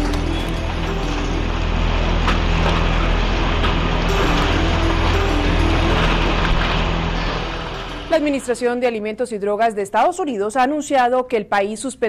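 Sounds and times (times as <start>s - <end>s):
dramatic news intro music: 0.0s - 9.2s.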